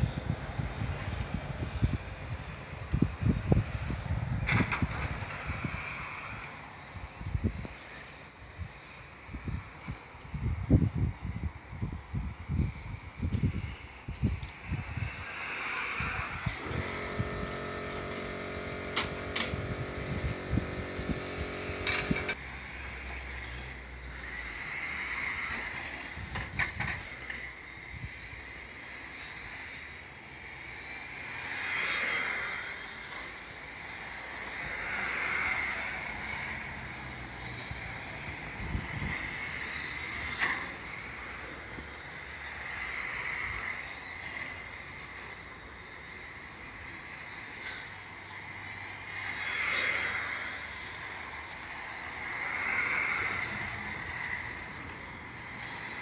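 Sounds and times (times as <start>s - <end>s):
rc car motor whining: 0.0s - 56.0s.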